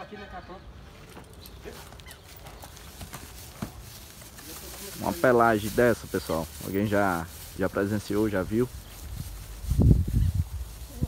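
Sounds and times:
hooves stepping on dirt: 0:00.7 - 0:11.0.

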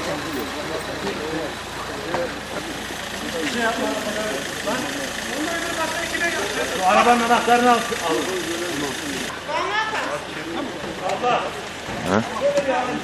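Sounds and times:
car engine idling: 0:00.0 - 0:09.4
people talking: 0:00.0 - 0:13.0.

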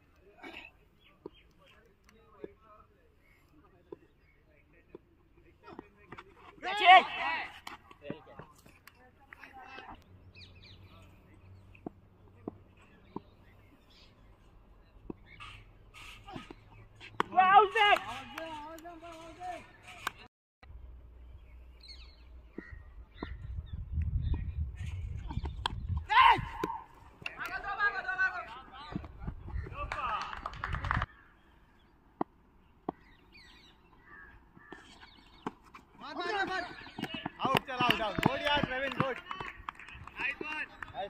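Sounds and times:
wind rumbling on microphone: 0:22.6 - 0:26.6, 0:28.9 - 0:31.1.

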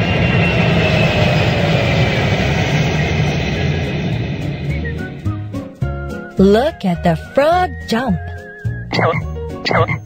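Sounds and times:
falling jet whine: 0:00.0 - 0:05.5
jet airplane roar: 0:00.0 - 0:05.8.

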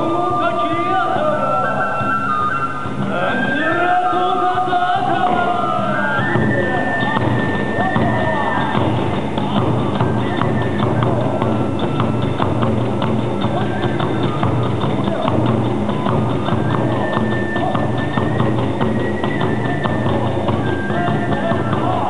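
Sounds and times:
high bamboo flute: 0:00.0 - 0:22.0
drum strikes: 0:02.0 - 0:22.0.

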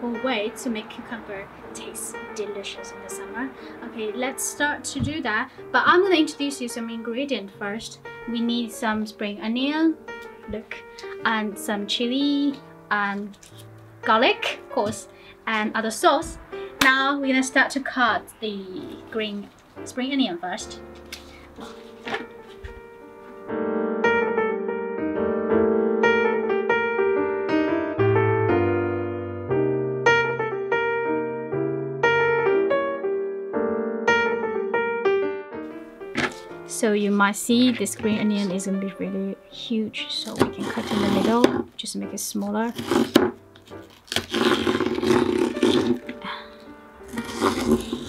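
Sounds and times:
background piano music: 0:00.0 - 0:48.0
knife slicing onions on board: 0:42.8 - 0:43.3.

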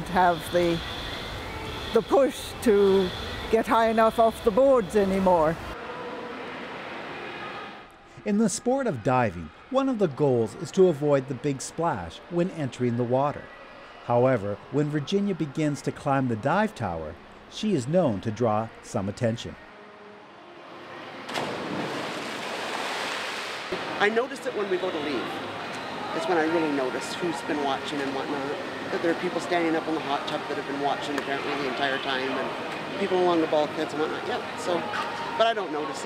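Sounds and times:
indoor pool hall hiss: 0:00.0 - 0:08.4
diver splashing into pool: 0:21.3 - 0:23.8
water splashing and churning: 0:21.3 - 0:24.1.

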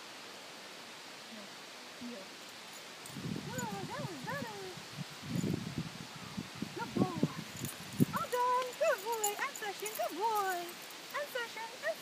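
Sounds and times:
low rustle of movement: 0:01.4 - 0:12.0.

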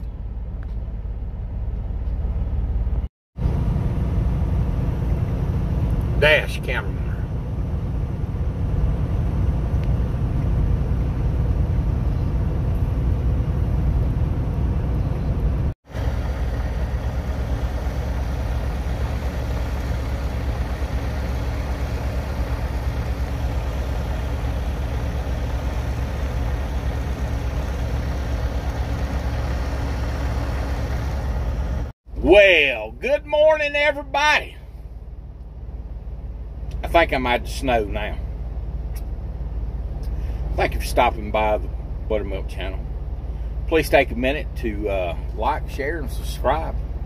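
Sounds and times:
diesel engine and road rumble: 0:00.0 - 0:47.0.

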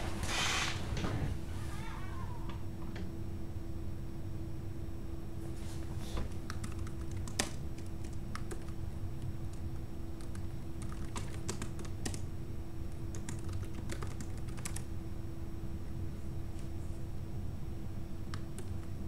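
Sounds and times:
steady low hum: 0:00.0 - 0:19.0
keyboard typing: 0:06.4 - 0:08.8, 0:10.2 - 0:12.2, 0:13.0 - 0:14.9, 0:18.3 - 0:18.9.

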